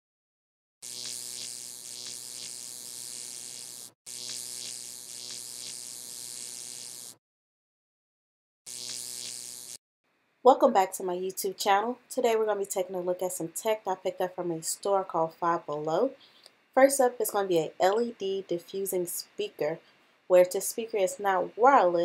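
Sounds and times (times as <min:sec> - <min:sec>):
neon sign electric buzz: 0:00.8 - 0:07.2, 0:08.7 - 0:09.8.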